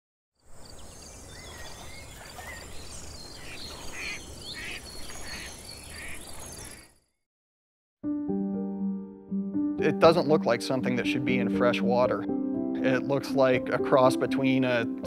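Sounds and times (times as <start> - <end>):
small birds chirping: 0.4 - 7.2
duck quacking: 3.4 - 6.2.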